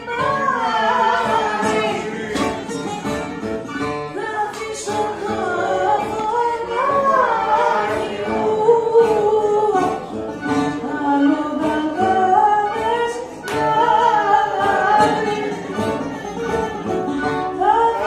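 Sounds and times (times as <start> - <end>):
accordion: 0.0 - 18.0
guitar: 0.0 - 18.0
person singing: 0.0 - 18.0.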